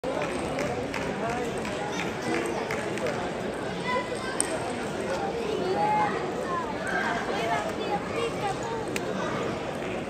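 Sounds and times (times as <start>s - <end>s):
babble of many voices: 0.0s - 10.0s.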